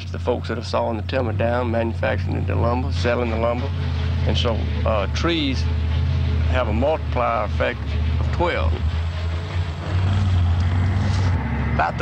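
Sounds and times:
sawmill machinery drone: 0:00.0 - 0:12.0.

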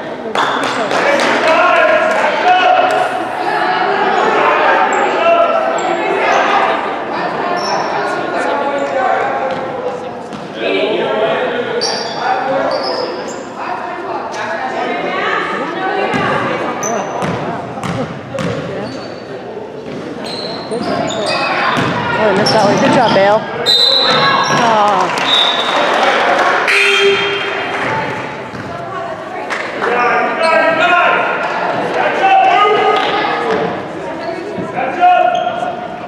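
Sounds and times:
sneaker squeaks: 0:07.5 - 0:07.9, 0:11.8 - 0:13.6, 0:16.1 - 0:25.9, 0:28.4 - 0:28.8, 0:32.8 - 0:36.0
basketball bouncing on hardwood: 0:21.8 - 0:22.6.

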